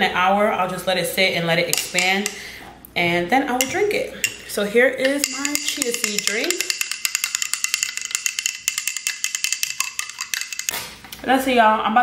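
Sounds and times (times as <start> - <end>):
spoon clinking against glass: 1.7 - 2.4, 3.6 - 10.9.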